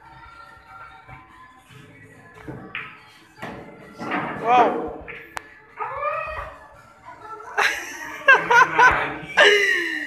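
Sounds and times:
people laughing: 7.5 - 10.0.

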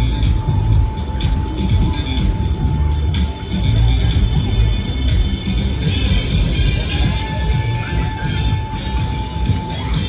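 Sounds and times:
loud music from sound system: 0.0 - 10.0.

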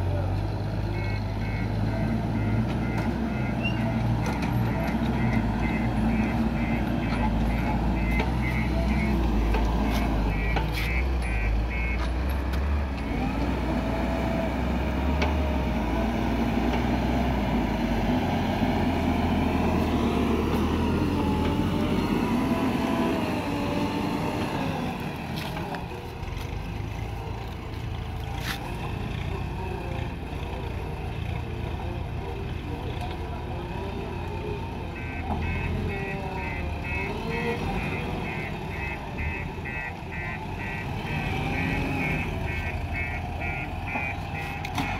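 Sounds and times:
diesel engine revving: 0.0 - 44.9
reversing alarm beeping: 0.9 - 4.0, 4.6 - 12.0, 35.0 - 44.9.

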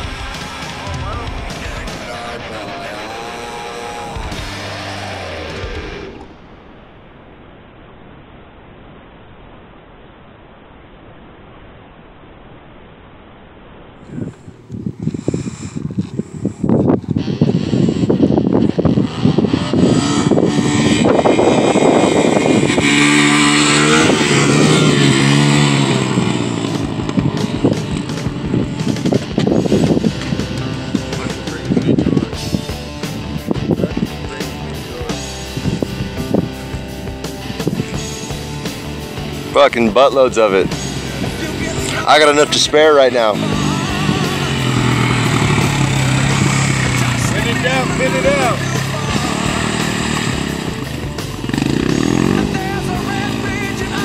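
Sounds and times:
music: 0.0 - 6.2, 20.7 - 54.0
dirt bike engine revving: 0.0 - 6.4, 14.1 - 54.0.

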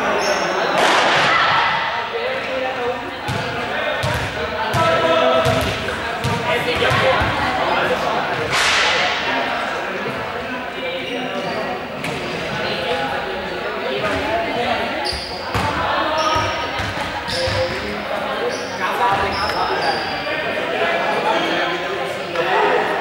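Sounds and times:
students chattering: 0.0 - 23.0
ball bouncing on court floor: 3.3 - 7.5.

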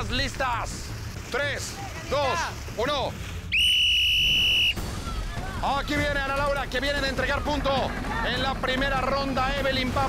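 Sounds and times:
sports whistle blast: 3.5 - 4.8.

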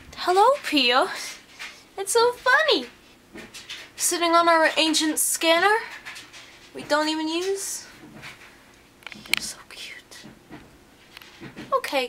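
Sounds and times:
person whispering: 9.3 - 10.3.

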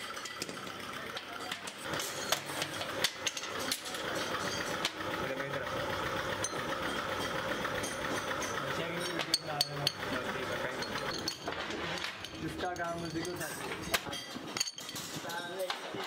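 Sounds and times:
workshop machinery running: 0.0 - 16.0
metal parts clinking: 1.6 - 4.9, 6.4 - 16.0.

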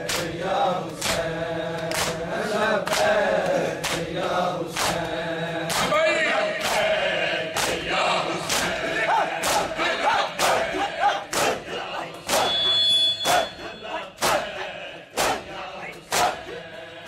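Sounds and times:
crowd chanting: 0.0 - 17.0
chest beating slaps: 12.3 - 12.6.

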